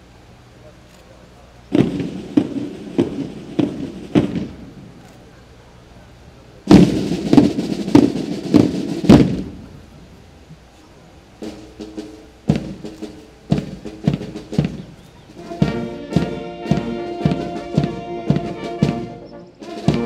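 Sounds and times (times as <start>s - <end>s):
loud bangs: 1.7s - 5.2s, 6.7s - 10.0s, 11.4s - 20.0s.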